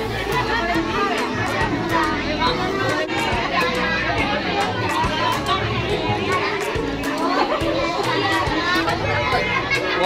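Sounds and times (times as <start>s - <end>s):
background music with a beat: 0.0s - 10.0s
children chattering: 0.0s - 10.0s.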